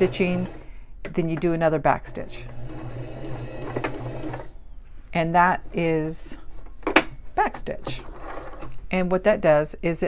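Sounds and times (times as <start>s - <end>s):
electric sewing machine running: 0.0s - 0.7s, 2.0s - 4.6s.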